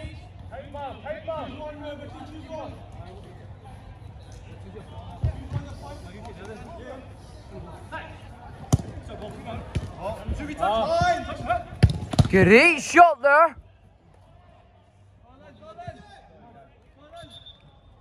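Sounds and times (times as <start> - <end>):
football being kicked: 8.7 - 9.0, 11.8 - 12.5.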